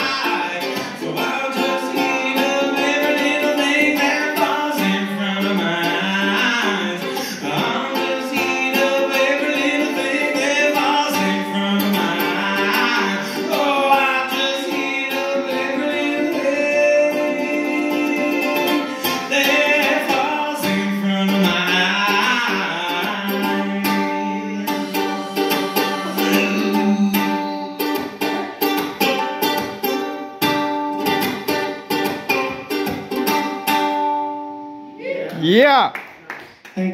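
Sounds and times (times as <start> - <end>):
man singing: 0.0 - 29.7
strummed ukulele: 0.0 - 35.0.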